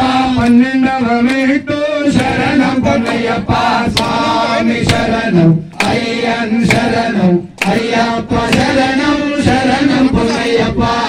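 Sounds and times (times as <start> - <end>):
man singing into a microphone: 0.0 - 3.6, 8.2 - 11.0
group of voices singing: 0.0 - 11.0.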